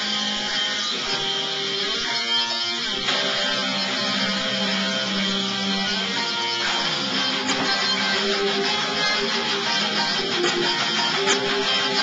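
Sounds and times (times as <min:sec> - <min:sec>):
bass guitar: 0:00.0 - 0:12.0
electric guitar chords: 0:00.0 - 0:12.0.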